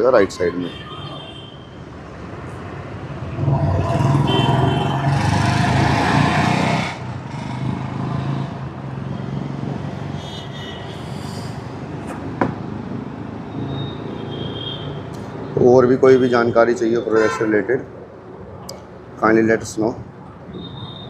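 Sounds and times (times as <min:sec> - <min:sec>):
vehicle passing close: 0:02.2 - 0:10.1.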